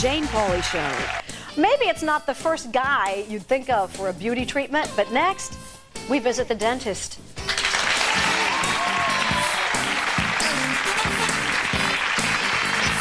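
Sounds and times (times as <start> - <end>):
audience applauding: 0.0 - 1.3, 7.5 - 13.0
show music with steady beat: 7.4 - 13.0.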